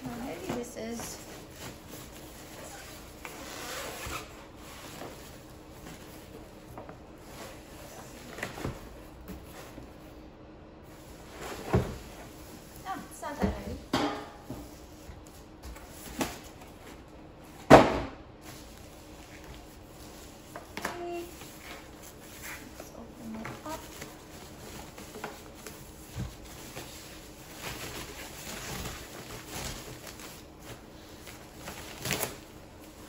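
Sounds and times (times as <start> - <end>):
plastic sheeting rustling: 18.4 - 33.0.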